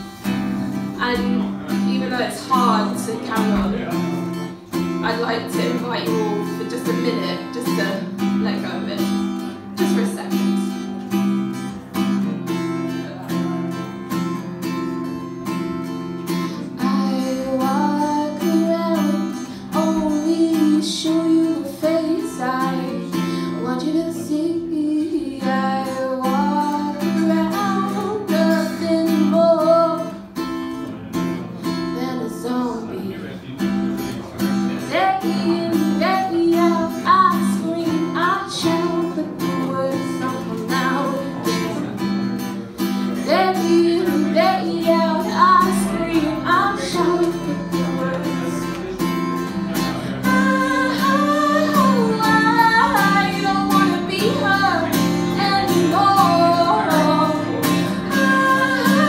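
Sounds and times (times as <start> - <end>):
acoustic guitar strumming: 0.0 - 59.0
woman singing without words: 1.0 - 10.9, 16.3 - 30.4, 31.6 - 33.1, 34.8 - 42.0, 43.2 - 49.0, 49.7 - 59.0.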